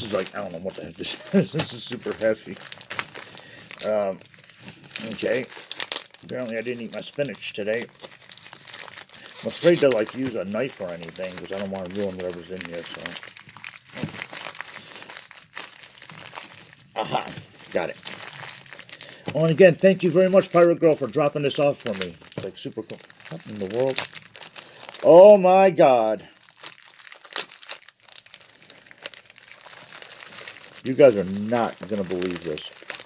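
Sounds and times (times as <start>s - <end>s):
plastic wrapping crinkling: 0.0s - 33.0s.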